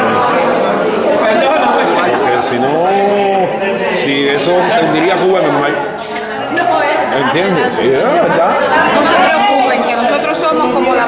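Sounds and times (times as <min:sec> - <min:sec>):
background voices chattering: 0:00.0 - 0:11.0
man talking: 0:07.2 - 0:08.6.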